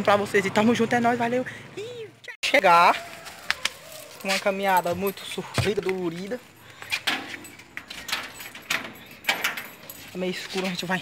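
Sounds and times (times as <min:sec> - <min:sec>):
footsteps walking: 0:02.7 - 0:08.6, 0:09.7 - 0:11.0
light metallic jingle: 0:03.9 - 0:11.0
person speaking: 0:04.2 - 0:06.5, 0:10.0 - 0:11.0.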